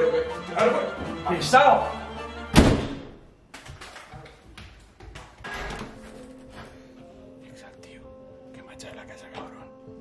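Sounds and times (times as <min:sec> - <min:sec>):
background music: 0:00.0 - 0:03.5, 0:05.1 - 0:10.0
door slamming shut: 0:02.5 - 0:03.2.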